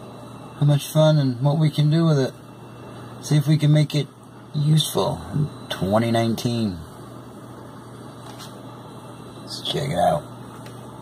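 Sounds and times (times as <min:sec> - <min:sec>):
computer cooling fans humming: 0:00.0 - 0:11.0.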